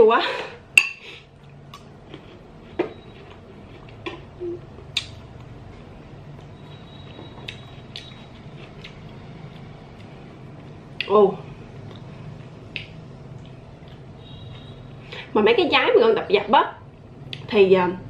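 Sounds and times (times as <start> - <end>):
low steady hum: 0.0 - 18.0
crisp chewing: 1.4 - 4.0, 7.3 - 10.3.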